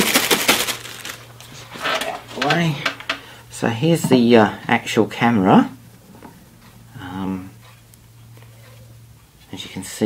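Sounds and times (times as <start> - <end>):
plastic bag crinkling: 0.0 - 2.8.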